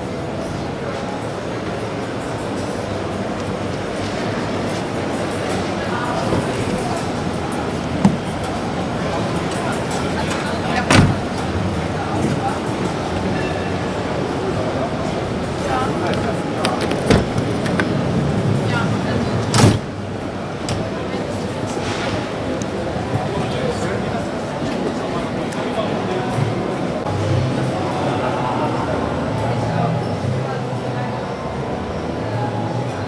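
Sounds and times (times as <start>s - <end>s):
crowd murmur: 0.0s - 33.0s
sliding door opening: 10.1s - 11.6s, 16.2s - 18.2s.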